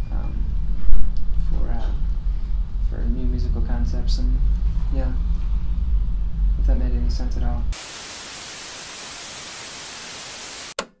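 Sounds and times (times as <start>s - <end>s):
static hiss: 7.7s - 10.9s.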